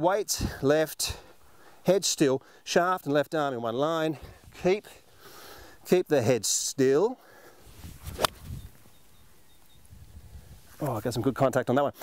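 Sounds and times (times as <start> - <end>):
golf club striking ball: 8.1 - 8.4.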